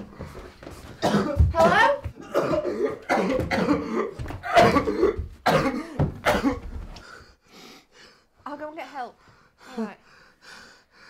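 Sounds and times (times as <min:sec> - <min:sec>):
person coughing: 0:01.0 - 0:06.7.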